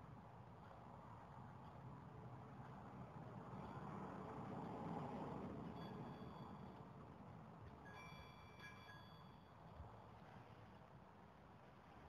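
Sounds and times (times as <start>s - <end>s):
faint high ringing tones: 5.8s - 6.7s, 7.9s - 9.6s.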